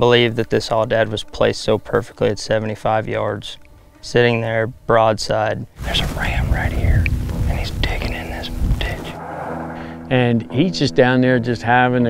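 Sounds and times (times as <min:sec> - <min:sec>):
man whispering: 0:05.8 - 0:09.2
low rumble: 0:05.8 - 0:10.5.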